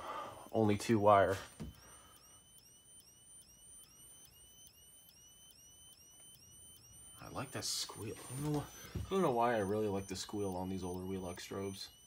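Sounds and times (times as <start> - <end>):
high-pitched fire alarm strobe squeal: 0.0 - 12.0.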